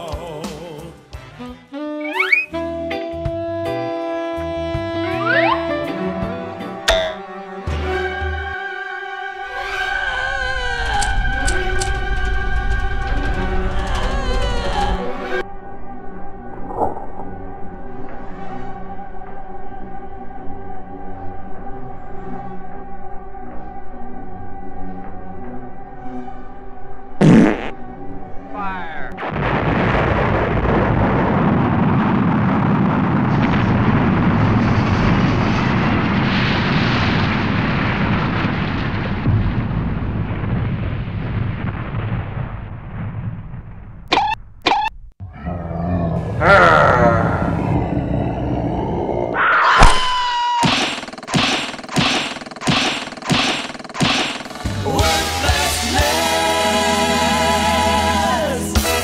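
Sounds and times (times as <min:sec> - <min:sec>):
music playing: 0:00.0 - 0:09.8, 0:54.6 - 0:59.0
explosion deep rumble: 0:29.1 - 0:49.4
punch hits: 0:49.8 - 0:54.6.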